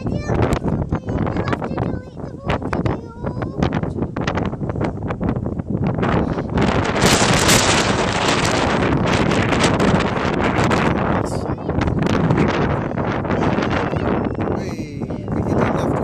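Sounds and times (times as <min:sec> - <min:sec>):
wind gusting on microphone: 0:00.0 - 0:16.0.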